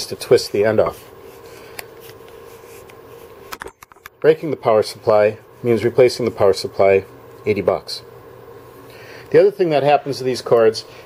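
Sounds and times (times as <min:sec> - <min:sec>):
cord rubbing over plastic: 0:00.3 - 0:03.4.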